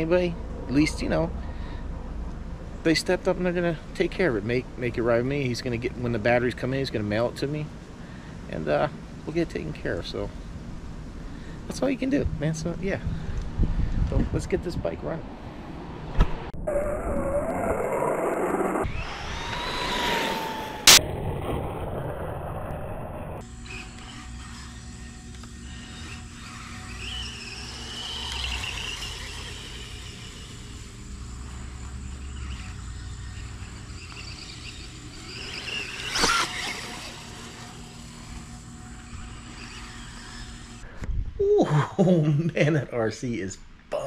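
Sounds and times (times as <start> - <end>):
electric motor whining: 16.7 - 40.9.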